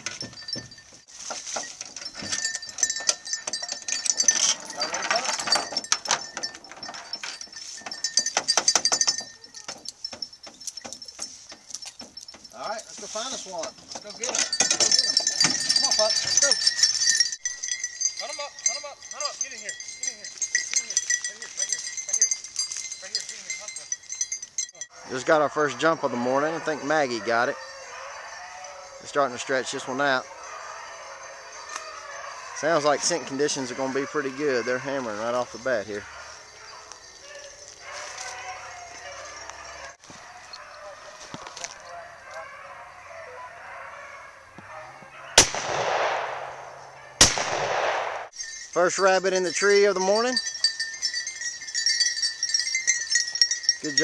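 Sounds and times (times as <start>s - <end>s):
hounds baying in yelps: 0.0s - 45.6s, 46.4s - 47.4s
high metallic jingling: 0.0s - 54.0s
shotgun blast: 45.4s - 48.3s.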